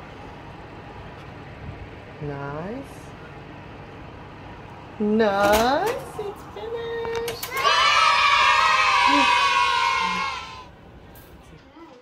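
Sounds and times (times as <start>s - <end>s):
person cheering yay: 8.9s - 10.6s.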